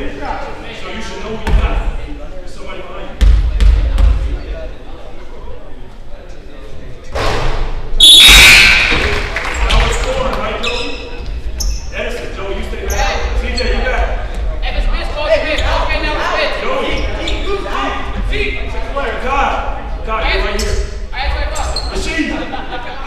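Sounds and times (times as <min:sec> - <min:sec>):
spectators and players talking: 0:00.0 - 0:23.0.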